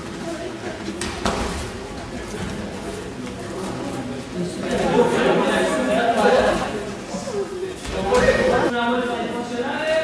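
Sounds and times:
voices in background: 0:00.0 - 0:10.0.

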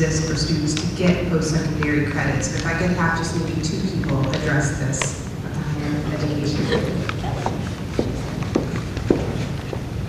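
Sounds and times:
low room noise: 0:00.0 - 0:10.0
high-heeled footsteps on wood: 0:07.1 - 0:10.0.

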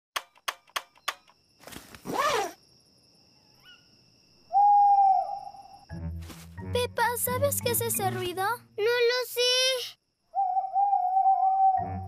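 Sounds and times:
owl hooting: 0:04.5 - 0:05.8, 0:10.3 - 0:12.0.

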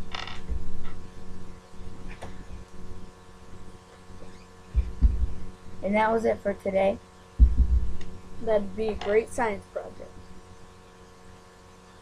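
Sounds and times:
low thumps and rumbling: 0:00.0 - 0:01.1, 0:04.7 - 0:05.6, 0:07.4 - 0:09.2
steady low hum: 0:00.0 - 0:12.0.

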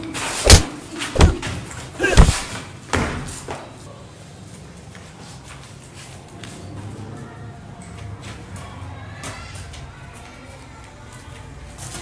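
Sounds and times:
heavy thuds of a scuffle: 0:00.4 - 0:03.5.

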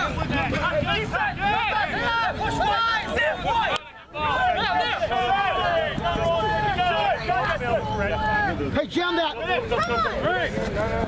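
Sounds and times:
men shouting: 0:00.0 - 0:10.6.

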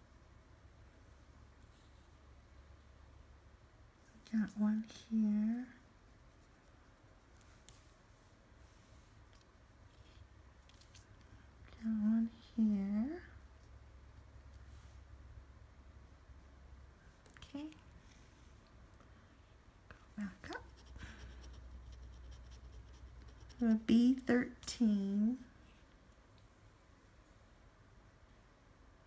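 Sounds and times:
scratching lottery ticket coating: 0:20.5 - 0:23.9.

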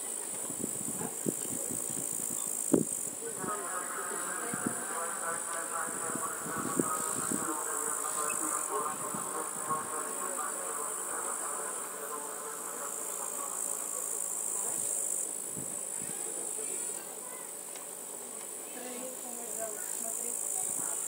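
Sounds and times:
insects chirring: 0:00.0 - 0:21.0.

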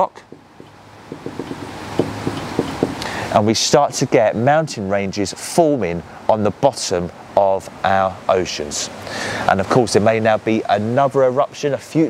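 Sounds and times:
marker tapping and scratching whiteboard: 0:00.2 - 0:03.1.

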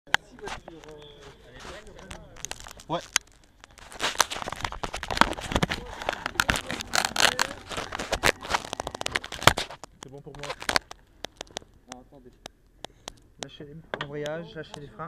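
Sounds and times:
hands rustling and crinkling: 0:00.1 - 0:13.5.

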